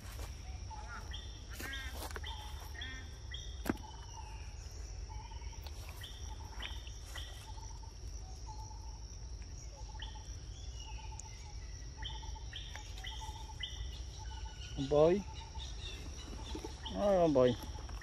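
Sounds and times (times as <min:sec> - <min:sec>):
birds calling: 0:00.0 - 0:18.0
high-pitched insect drone: 0:00.2 - 0:18.0.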